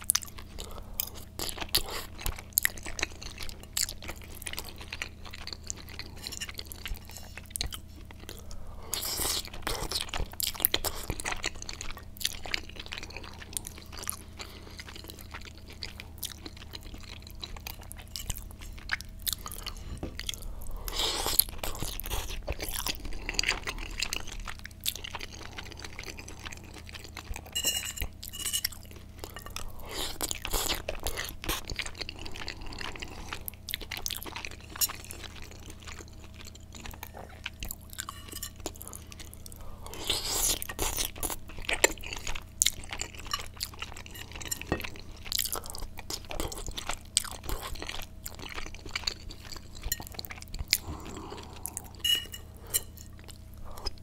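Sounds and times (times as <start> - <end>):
wet chewing mouth sounds: 0.0 - 54.0.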